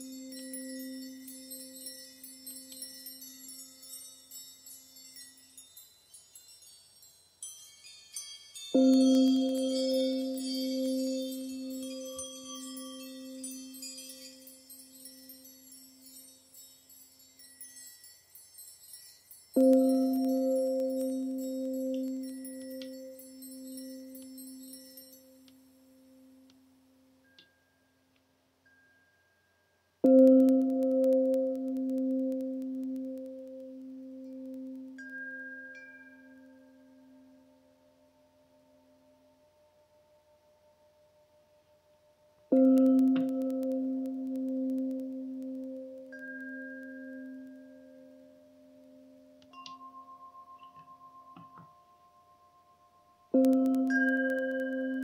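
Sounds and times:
high chime tinkles: 0.0 - 55.0
singing bowls ringing: 0.0 - 55.0.

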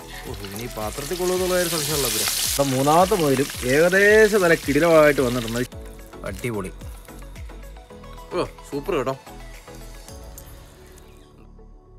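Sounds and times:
meat deep-frying in hot oil: 0.0 - 7.6.

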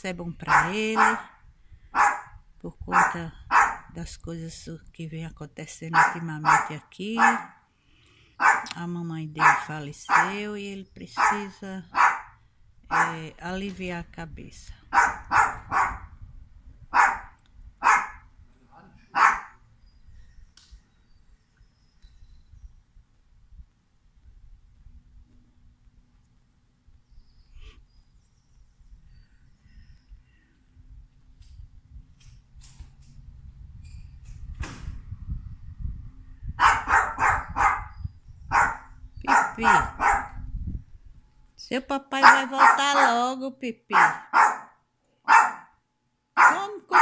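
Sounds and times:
small dog barking: 0.5 - 1.3, 2.0 - 3.9, 6.0 - 7.6, 8.4 - 8.7, 9.4 - 10.4, 11.2 - 12.3, 12.9 - 13.2, 14.9 - 16.1, 16.9 - 18.2, 19.1 - 19.6, 36.6 - 37.9, 38.5 - 40.4, 42.2 - 43.2, 43.9 - 45.8, 46.4 - 47.0.

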